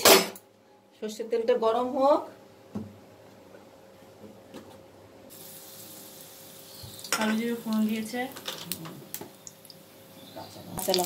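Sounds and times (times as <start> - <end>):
oil sizzling: 5.3 - 11.0.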